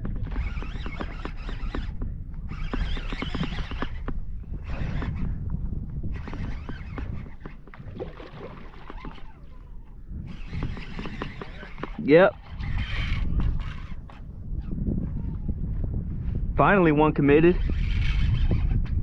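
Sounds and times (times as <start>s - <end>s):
water lapping at a kayak: 0.0s - 12.8s
fishing reel clicking and whirring: 0.0s - 15.5s, 17.0s - 19.0s
wind buffeting microphone: 0.0s - 19.0s.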